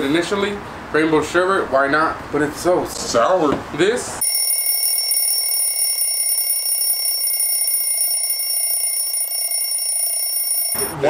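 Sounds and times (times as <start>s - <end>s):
high-pitched electronic ringing tone: 4.2s - 10.9s.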